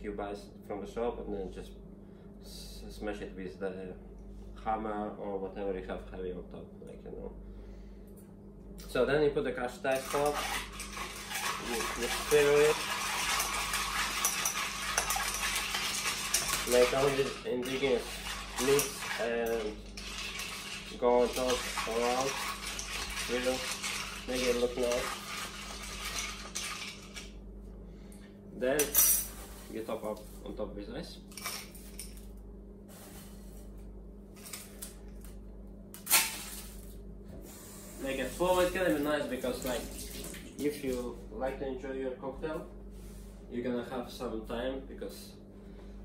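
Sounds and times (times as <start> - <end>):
low steady hum: 0.0 - 46.0
spoon churning crushed ice: 9.9 - 27.3.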